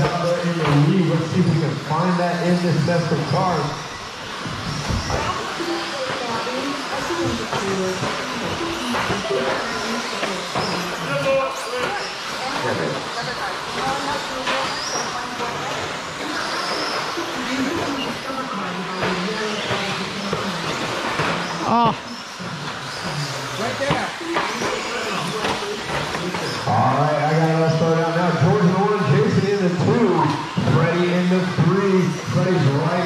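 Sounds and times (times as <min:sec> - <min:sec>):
people talking: 0:00.0 - 0:03.8, 0:05.1 - 0:22.2, 0:23.0 - 0:33.0
rc truck motors whining: 0:00.0 - 0:33.0.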